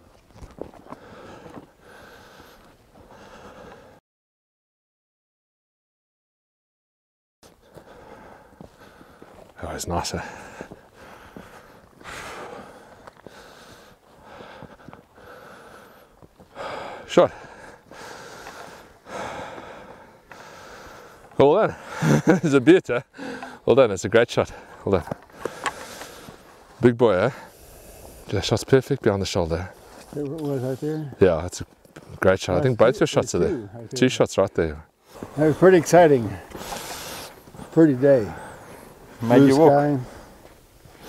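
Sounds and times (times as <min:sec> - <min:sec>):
breathy rustling noise: 0:00.0 - 0:04.0, 0:07.5 - 0:23.7, 0:24.5 - 0:29.0, 0:29.6 - 0:32.2, 0:35.0 - 0:41.0.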